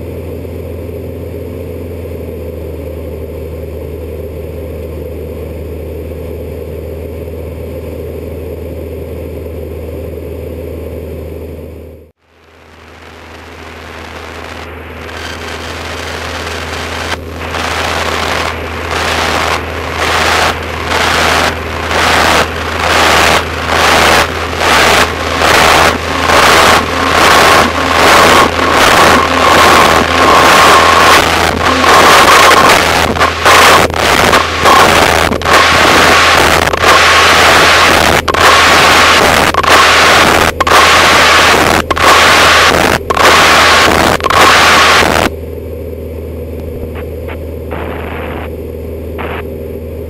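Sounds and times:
aircraft engine drone: 0.0s - 50.0s
headset static hissing: 12.2s - 45.3s, 46.8s - 48.6s, 49.2s - 49.5s
steady high tone: 12.4s - 42.6s.

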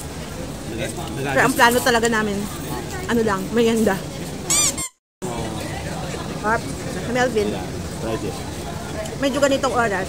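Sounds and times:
steady background noise: 0.0s - 10.0s
high-pitched squeak: 4.5s - 5.0s.

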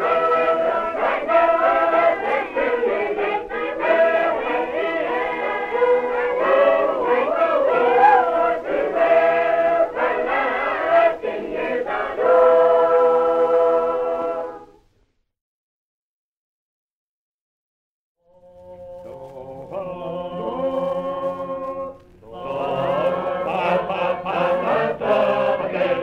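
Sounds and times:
choir singing a hymn unaccompanied: 0.0s - 14.8s, 19.1s - 26.0s.

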